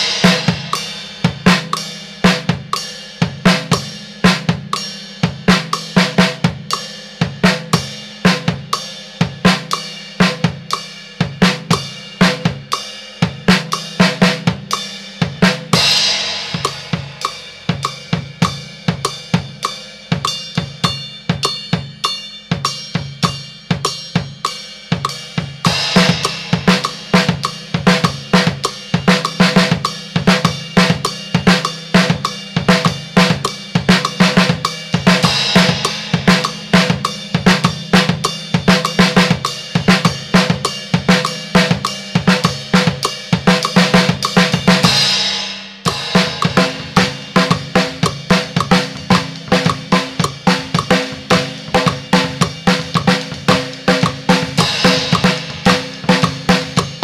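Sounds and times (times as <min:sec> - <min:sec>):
drum kit playing salsa beat: 0:00.0 - 0:57.0.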